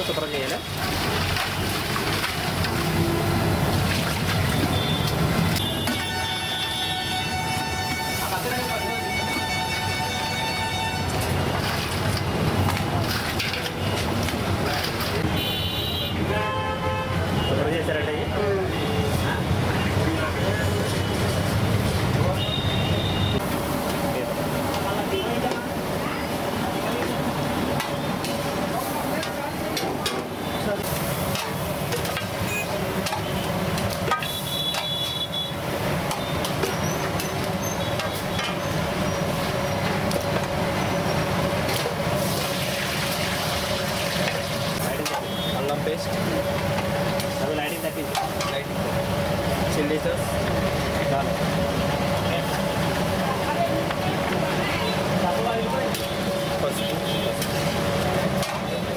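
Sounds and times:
traffic noise: 0:00.0 - 0:58.9
vehicle horns honking: 0:04.7 - 0:11.2, 0:15.3 - 0:17.6, 0:22.3 - 0:23.4, 0:34.1 - 0:35.6.

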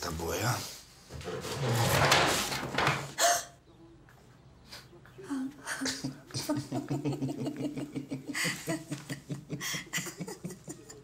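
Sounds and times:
quiet laughter: 0:03.2 - 0:11.0.

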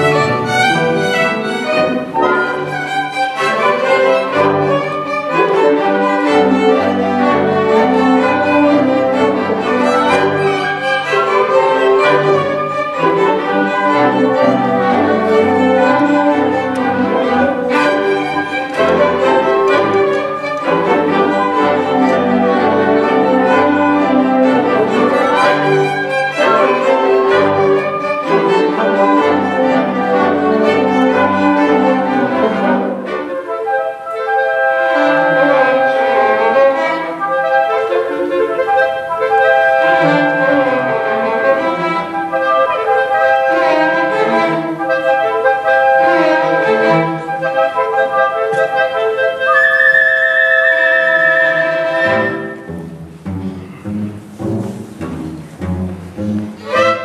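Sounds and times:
orchestra playing classical music: 0:00.0 - 0:57.0.

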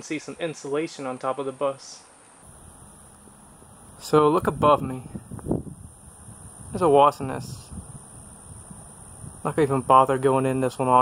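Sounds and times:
faint low rumble and hiss: 0:00.0 - 0:11.0.

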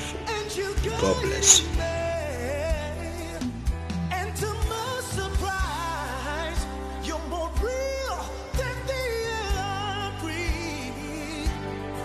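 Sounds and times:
person singing with vibrato: 0:00.0 - 0:03.6
sustained bass: 0:00.0 - 0:12.0.

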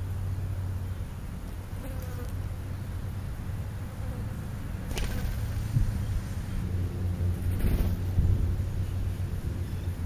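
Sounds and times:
low buzzing hum: 0:00.0 - 0:10.0.

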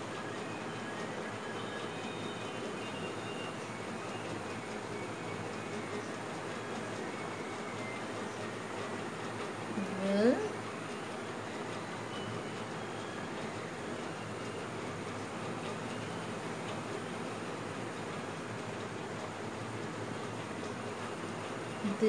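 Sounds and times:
background hum and hiss: 0:00.0 - 0:22.0.

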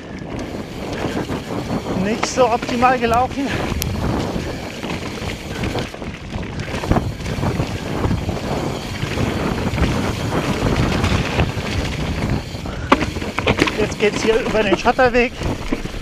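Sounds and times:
bike knocking and rattling: 0:00.0 - 0:16.0
bike tyres rolling on dirt: 0:00.0 - 0:16.0
wind rushing over microphone: 0:00.0 - 0:16.0.

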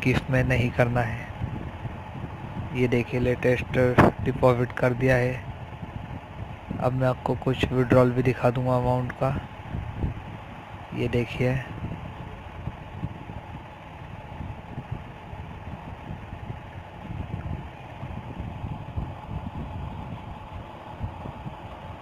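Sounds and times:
faint hum: 0:00.0 - 0:22.0
low rumble: 0:00.0 - 0:22.0.

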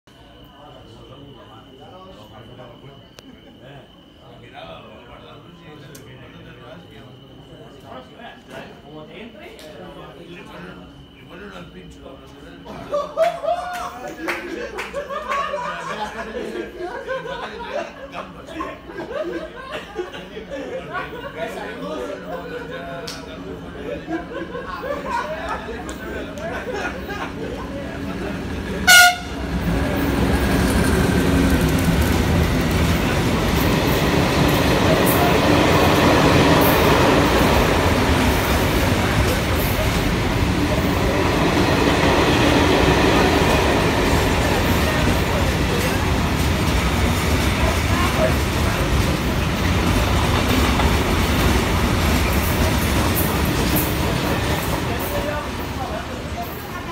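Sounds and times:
freight train rumbling past: 0:23.3 - 0:56.9
locomotive horn blast: 0:28.8 - 0:29.7.

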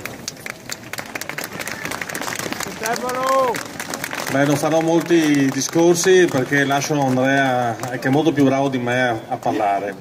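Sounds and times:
crowd applauding: 0:00.0 - 0:09.2.

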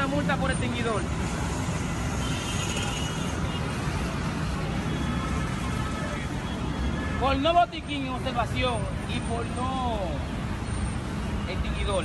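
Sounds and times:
busy road traffic rumble: 0:00.0 - 0:12.0.

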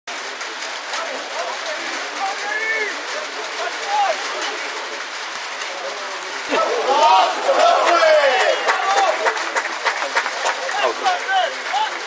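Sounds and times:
indistinct shouts: 0:06.5 - 0:09.2.

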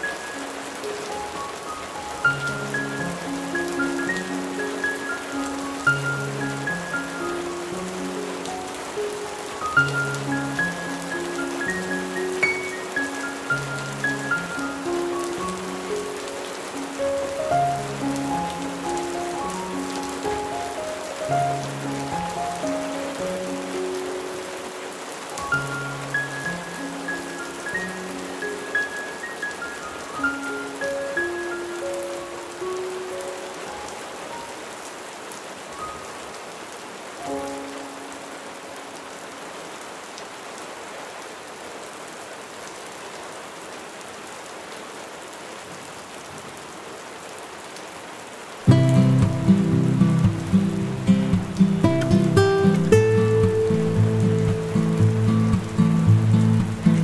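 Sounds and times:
slow instrumental music: 0:00.0 - 0:34.7, 0:37.2 - 0:38.6, 0:48.7 - 0:57.0
heavy rain on a window: 0:00.0 - 0:57.0.

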